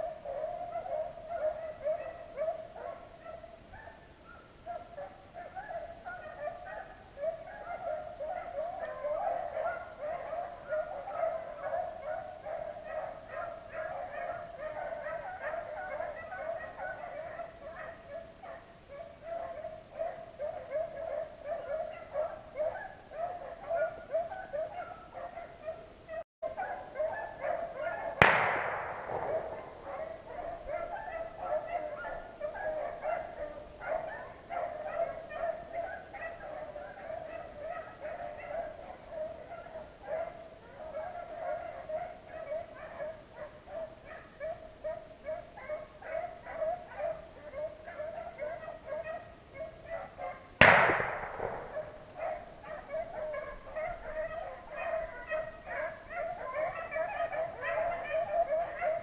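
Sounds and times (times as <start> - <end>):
hounds baying: 0.0 - 59.0
gunshots: 28.2 - 29.6, 50.6 - 51.8.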